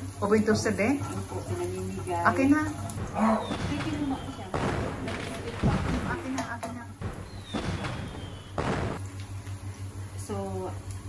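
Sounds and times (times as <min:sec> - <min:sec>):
firework bangs: 0:02.2 - 0:09.2
firework whistles falling in pitch: 0:07.1 - 0:09.0.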